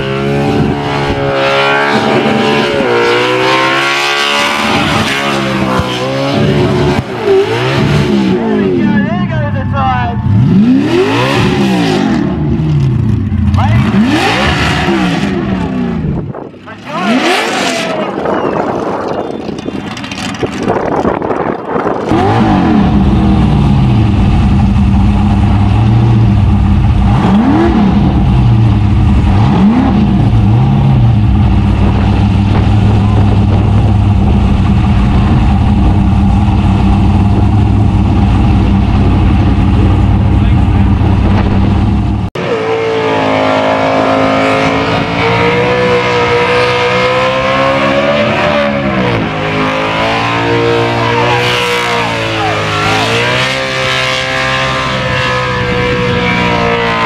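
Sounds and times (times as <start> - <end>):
car engine at high revs: 0.0 - 57.0
car engine revving: 0.0 - 57.0.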